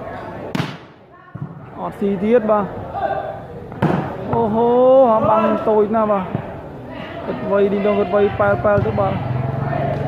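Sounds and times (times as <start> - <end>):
spectators' voices: 0.0 - 10.0
volleyball smack: 0.5 - 1.5, 3.7 - 4.2.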